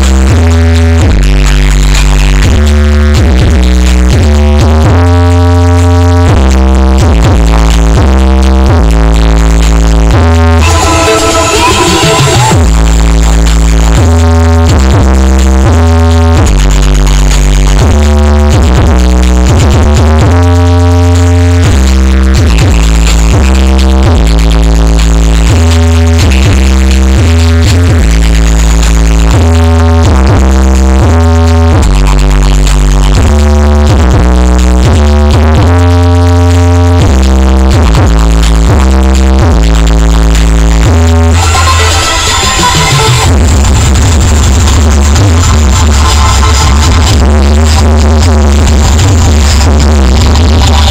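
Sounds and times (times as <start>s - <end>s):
bass-heavy electronic dance music: 0.0s - 50.9s.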